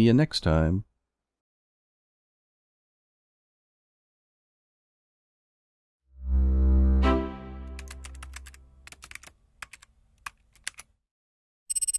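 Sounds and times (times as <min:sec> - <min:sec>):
deep musical swell: 0:06.2 - 0:07.8
keyboard typing clicks: 0:07.7 - 0:10.9.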